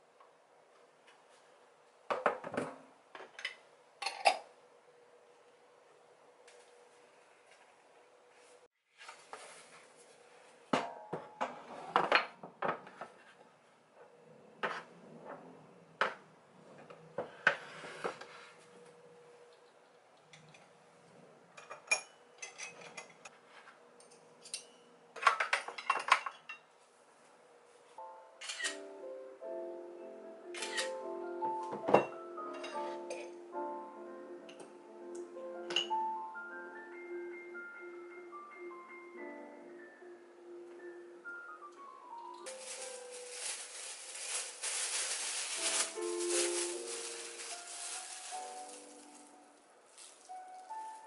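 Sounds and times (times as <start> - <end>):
dishes and cutlery clinking: 3.4 - 4.5, 21.6 - 26.7
light background music: 28.0 - 51.0.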